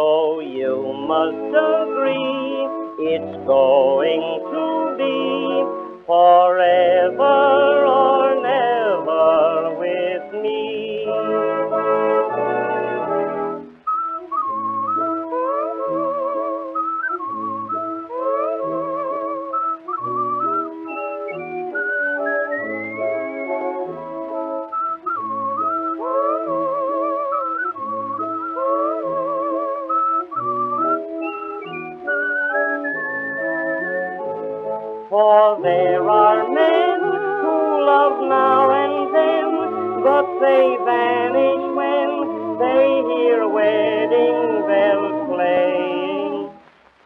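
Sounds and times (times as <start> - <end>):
person whistling melody: 0.0 - 46.6
oom-pah accompaniment: 0.0 - 46.8.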